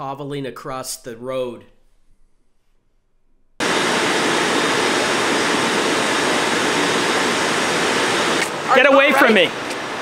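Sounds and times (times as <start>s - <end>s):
loud static hiss: 3.6s - 10.0s.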